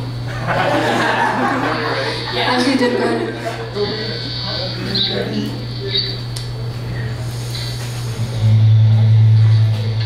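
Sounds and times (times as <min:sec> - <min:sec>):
low electrical buzz: 0:00.0 - 0:10.0
people talking: 0:00.6 - 0:10.0.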